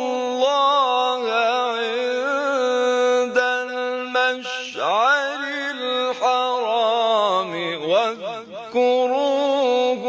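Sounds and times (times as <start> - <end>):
man chanting melodically: 0.0 - 10.0.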